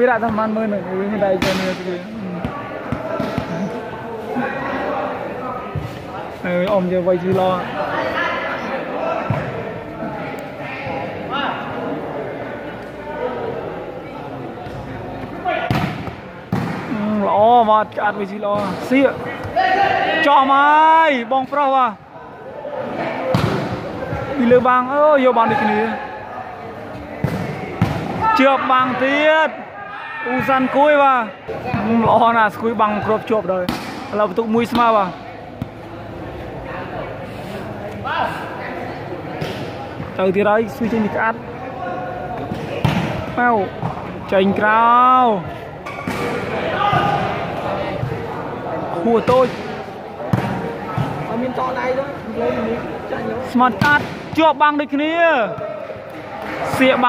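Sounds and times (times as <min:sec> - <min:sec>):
onlookers chattering and shouting: 0:00.0 - 0:57.0.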